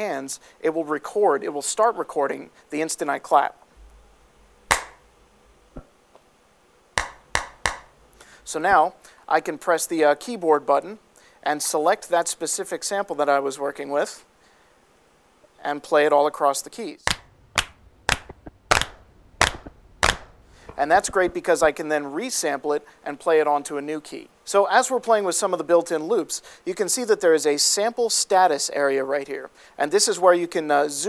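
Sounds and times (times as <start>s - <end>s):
hand claps: 4.7s - 5.0s, 7.0s - 7.9s, 17.1s - 20.8s.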